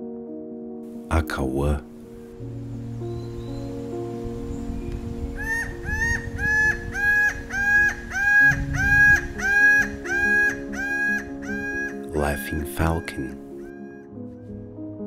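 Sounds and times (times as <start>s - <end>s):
falcon calling: 5.4s - 14.1s.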